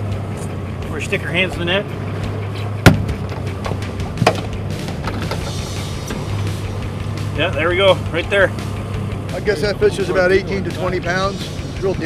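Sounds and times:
boat motor idling hum: 0.0s - 12.0s
club thumping fish head: 2.8s - 3.4s.

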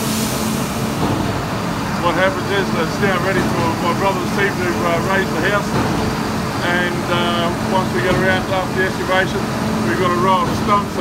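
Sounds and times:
hiss: 0.0s - 1.3s
diesel engine running: 0.0s - 11.0s.

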